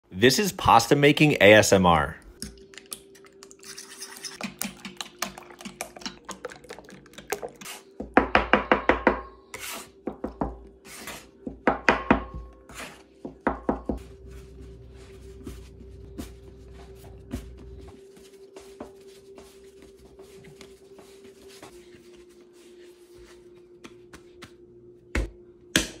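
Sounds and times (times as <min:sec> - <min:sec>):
fork beating eggs: 0:02.4 - 0:08.0
soft pats on dough: 0:13.3 - 0:25.3.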